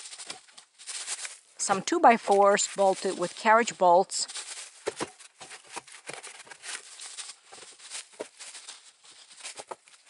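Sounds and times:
dry leaves rustling and crackling: 0:00.0 - 0:05.5, 0:06.2 - 0:10.0.

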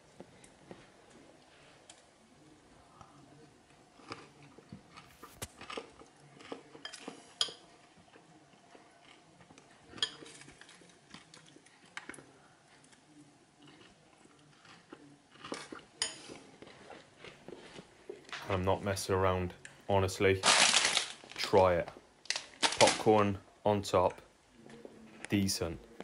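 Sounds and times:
chewing crunchy food: 0:02.9 - 0:18.6.

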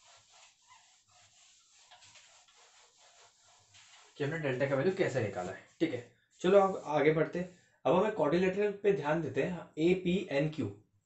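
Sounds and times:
duster rubbing whiteboard: 0:00.0 - 0:07.6.

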